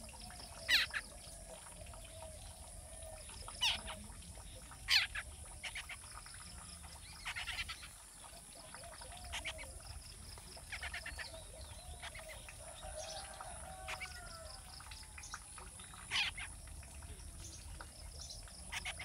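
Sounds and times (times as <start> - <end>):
bird calls: 0.1 - 19.0.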